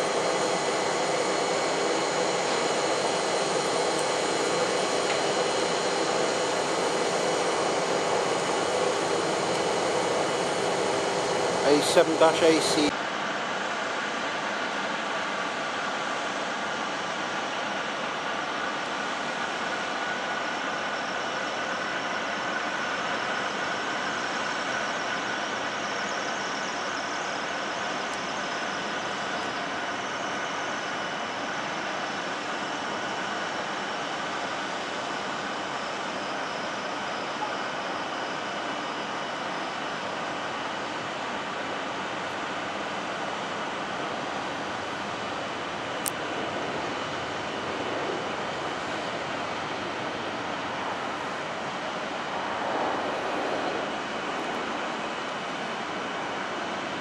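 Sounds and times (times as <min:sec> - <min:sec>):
airliner engine rushing noise: 0:00.0 - 0:12.9, 0:14.0 - 0:57.0
faint high whine: 0:00.0 - 0:57.0.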